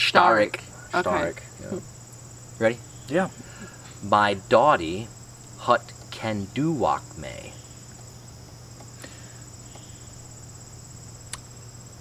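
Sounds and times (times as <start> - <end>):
insect chorus trilling: 0.0 - 12.0
low steady hum: 0.0 - 12.0.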